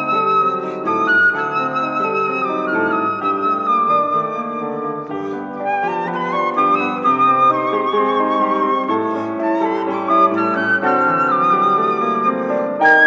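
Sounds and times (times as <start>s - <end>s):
flute melody: 0.0s - 13.0s.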